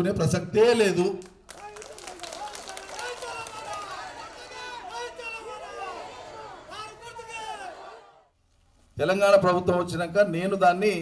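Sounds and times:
crowd talking and calling out: 2.4s - 8.2s.

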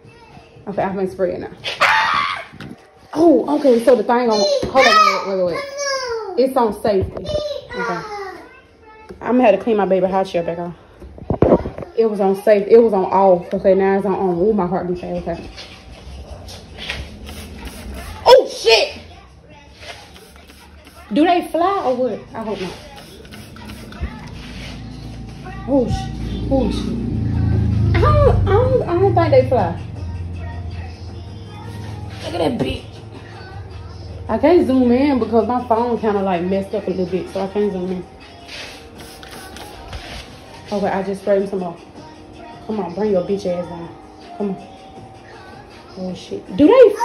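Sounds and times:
faint background music: 0.0s - 47.0s
spray bottle hissing sprays: 16.8s - 18.3s, 19.8s - 21.2s, 22.4s - 25.0s, 38.5s - 40.4s.

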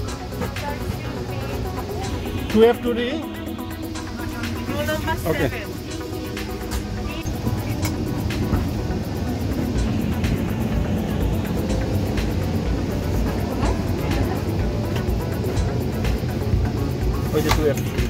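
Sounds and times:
airliner cabin rumble: 0.0s - 18.0s
music playing: 0.0s - 18.0s.

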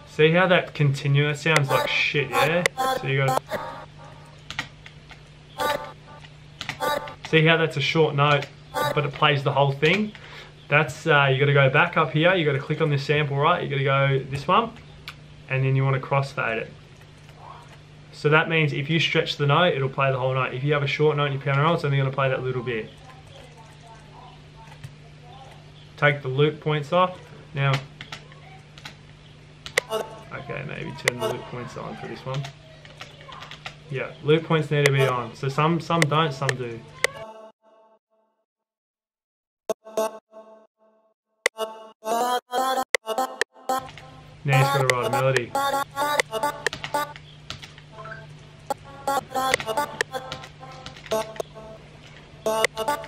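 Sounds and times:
steady low hum: 0.0s - 11.8s, 43.8s - 53.0s
sampled vocal stabs: 1.6s - 4.4s, 5.6s - 6.2s, 6.8s - 7.3s, 8.8s - 9.2s, 43.0s - 47.1s, 48.7s - 51.8s.

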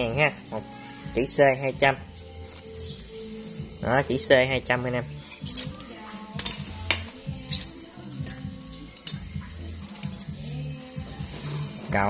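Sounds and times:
background music with bass line: 0.0s - 12.0s
metal tools clinking on clamp: 5.2s - 5.8s.

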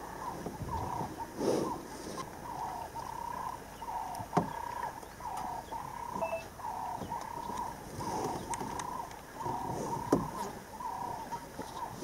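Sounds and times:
wild animal calling: 0.0s - 12.0s.

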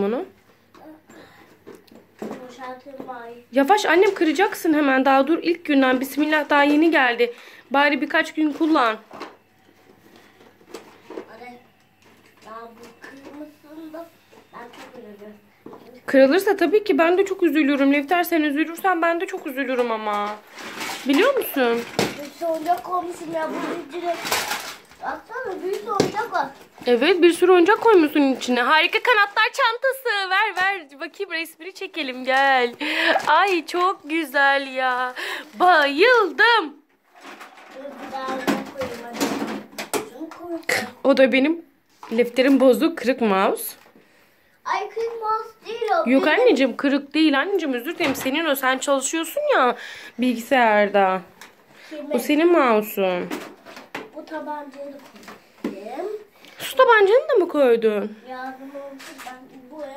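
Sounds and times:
plastic toys rattling: 19.3s - 40.9s, 53.2s - 56.1s, 58.5s - 59.9s.

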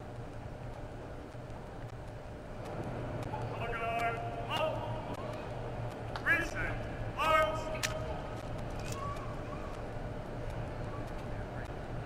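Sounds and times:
low background hum: 0.0s - 12.0s
man announcing over public address: 3.4s - 5.2s, 6.2s - 8.4s.

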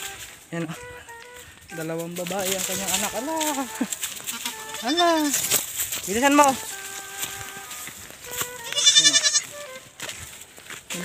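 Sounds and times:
goat bleating: 1.8s - 9.9s.

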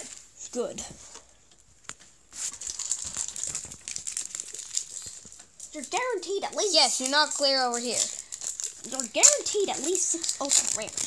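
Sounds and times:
foil wrappers crinkling: 1.0s - 11.0s.

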